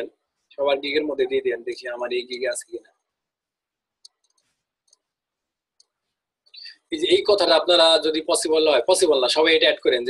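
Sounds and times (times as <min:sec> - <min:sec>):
faint mouse clicks: 0:04.0 - 0:05.1, 0:05.8 - 0:06.1.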